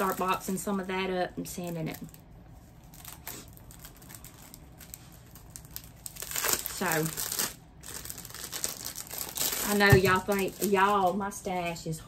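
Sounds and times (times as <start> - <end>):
plastic packaging rustling: 0.0 - 11.8
plastic packaging clicks: 2.9 - 11.2.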